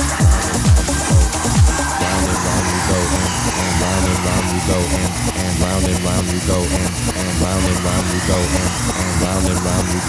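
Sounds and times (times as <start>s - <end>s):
buzzing synth bass line: 0.0s - 10.0s
techno music: 0.0s - 10.0s.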